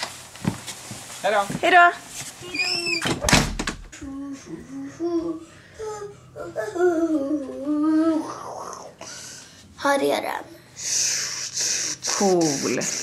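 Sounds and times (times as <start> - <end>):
front door thudding shut: 3.0 - 3.9
person making wavering sounds: 4.0 - 9.0.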